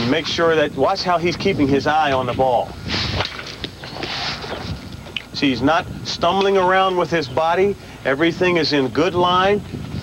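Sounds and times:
outdoor field noise: 0.0s - 10.0s.

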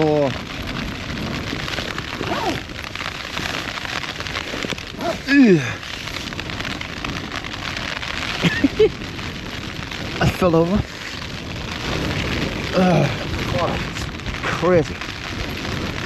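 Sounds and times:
heavy rain on tent fabric: 0.0s - 16.0s.

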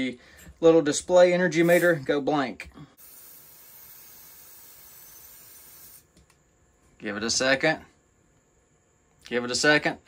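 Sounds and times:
aerosol spray hissing: 1.6s - 2.0s, 3.0s - 6.1s.

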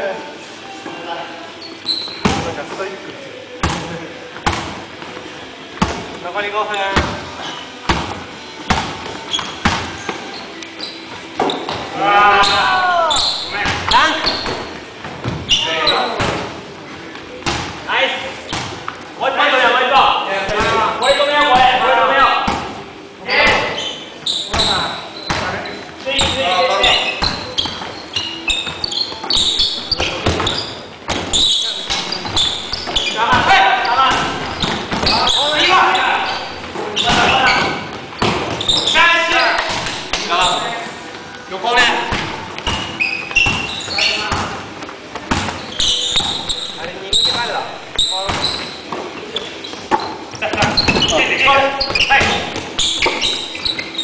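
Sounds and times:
basketballs bouncing on wooden floor: 13.3s - 15.6s, 26.2s - 35.6s, 36.2s - 38.9s, 42.0s - 48.8s, 49.9s - 51.2s.

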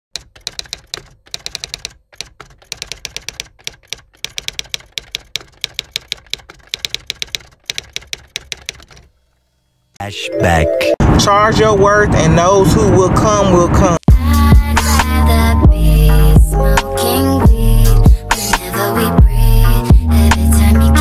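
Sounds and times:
typewriter key clicks: 0.2s - 9.1s.

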